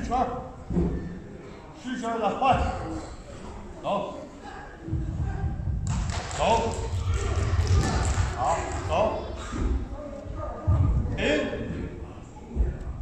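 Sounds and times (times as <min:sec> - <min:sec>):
man speaking in a large hall: 0:00.0 - 0:00.8, 0:01.4 - 0:04.4, 0:06.2 - 0:07.0, 0:08.3 - 0:09.7, 0:11.0 - 0:12.3
low thuds: 0:04.9 - 0:13.0.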